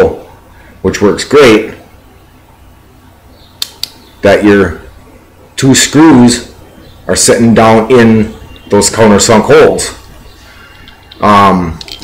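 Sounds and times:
short sharp clicks: 0:03.6 - 0:04.0.

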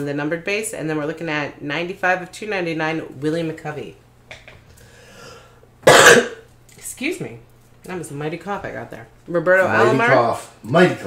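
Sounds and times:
person coughing loudly: 0:05.8 - 0:06.4.

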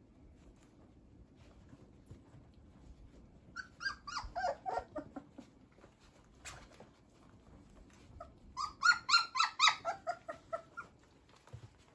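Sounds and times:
puppies whimpering and squealing: 0:03.4 - 0:06.4, 0:07.1 - 0:11.9.

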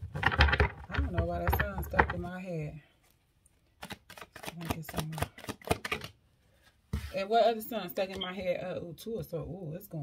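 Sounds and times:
cards being shuffled: 0:03.7 - 0:06.2.

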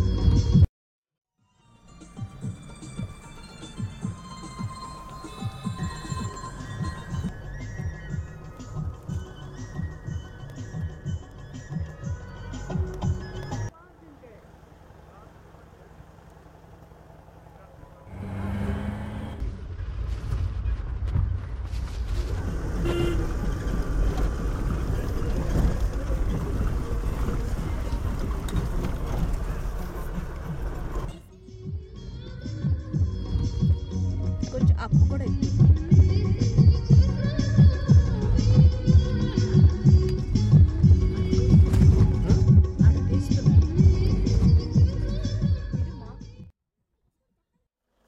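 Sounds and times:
background music: 0:01.5 - 0:13.7, 0:30.6 - 0:46.5
vehicle road and engine rumble: 0:01.6 - 0:46.5.

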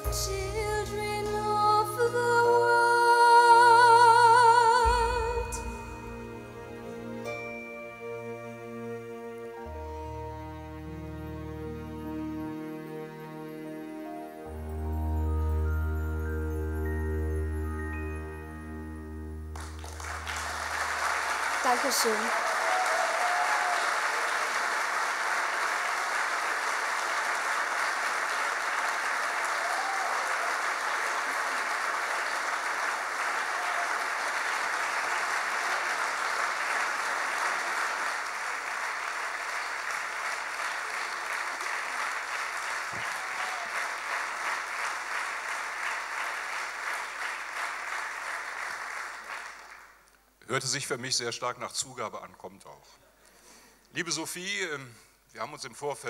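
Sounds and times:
audience applauding: 0:19.5 - 0:50.3.

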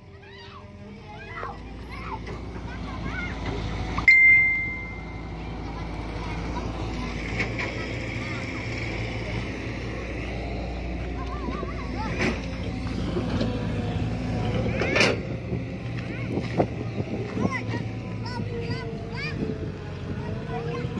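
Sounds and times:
children calling out: 0:00.0 - 0:20.9
diesel engine running: 0:00.0 - 0:20.9.

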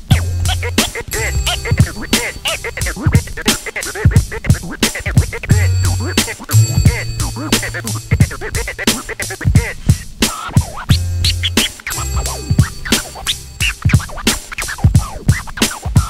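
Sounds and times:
deep bass line: 0:00.0 - 0:03.4, 0:05.5 - 0:09.6, 0:10.9 - 0:13.5
hip-hop drum beat: 0:00.0 - 0:16.0
turntable scratching: 0:00.0 - 0:16.0.

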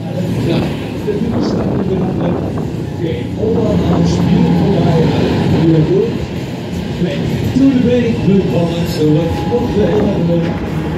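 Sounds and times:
voice over loudspeakers: 0:00.0 - 0:06.3, 0:06.9 - 0:10.9
ride machinery humming: 0:00.0 - 0:10.9.

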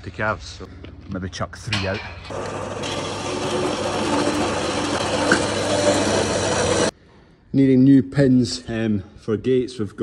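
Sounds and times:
band saw cutting steel: 0:02.3 - 0:06.9.

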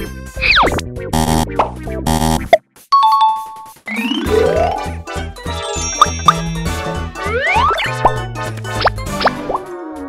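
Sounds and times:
upbeat children's music: 0:02.7 - 0:10.0
cartoon rising pitch glides: 0:03.9 - 0:04.9, 0:07.2 - 0:08.0.

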